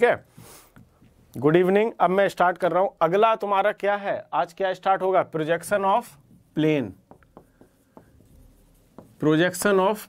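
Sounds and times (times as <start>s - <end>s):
marker pen on whiteboard: 0.2s - 1.7s, 4.8s - 10.0s.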